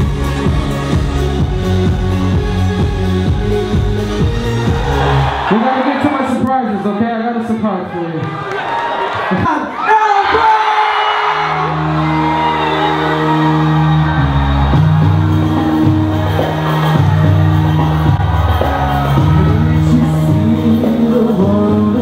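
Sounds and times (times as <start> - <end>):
live concert song: 0.0 - 22.0
crowd cheering and whooping: 4.5 - 6.8, 8.0 - 20.6
people shouting and singing: 9.7 - 22.0.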